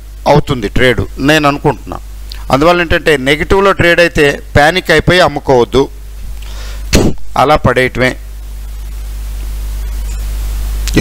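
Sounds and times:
low hum with faint hiss: 0:00.0 - 0:11.0
person speaking: 0:00.2 - 0:06.1, 0:07.3 - 0:08.4.

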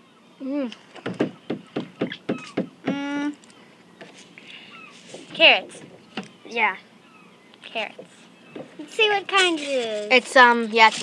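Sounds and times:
child humming mm: 0:00.4 - 0:00.8, 0:02.8 - 0:03.4.

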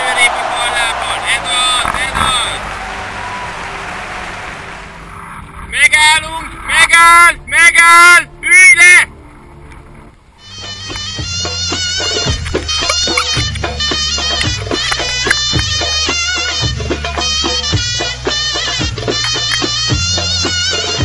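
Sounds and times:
loud drawn-out vocal calls: 0:00.0 - 0:05.0.

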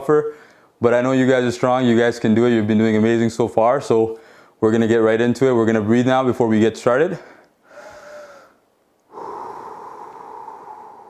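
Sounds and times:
man exhaling deeply: 0:07.7 - 0:11.0.

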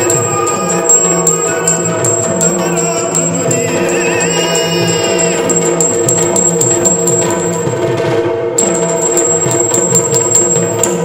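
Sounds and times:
small hand cymbals ringing: 0:00.0 - 0:07.6, 0:08.6 - 0:11.0
barrel drum rhythm: 0:00.0 - 0:11.0.

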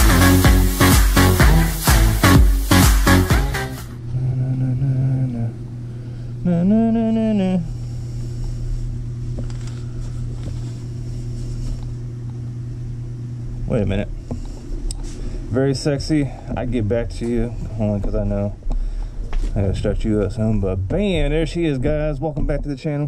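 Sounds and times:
electronic dance music: 0:00.0 - 0:04.0
steady low hum: 0:00.0 - 0:23.0.

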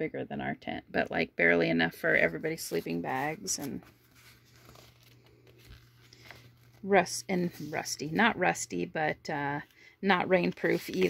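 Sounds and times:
low steady hum: 0:00.0 - 0:11.0
paper handling: 0:02.1 - 0:07.9, 0:10.4 - 0:11.0.

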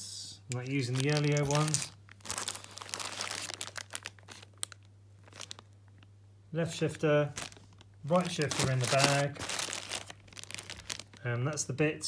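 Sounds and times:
plastic bags crinkling: 0:00.5 - 0:06.1, 0:06.8 - 0:11.6.

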